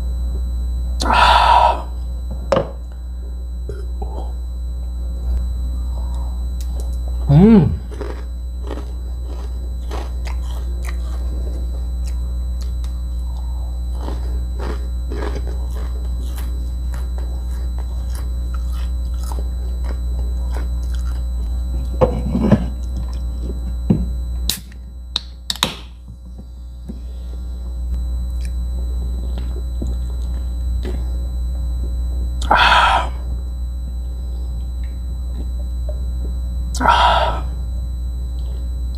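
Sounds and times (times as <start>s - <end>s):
low electrical hum: 0.0s - 38.9s
chewing crunchy peanuts: 7.8s - 22.0s.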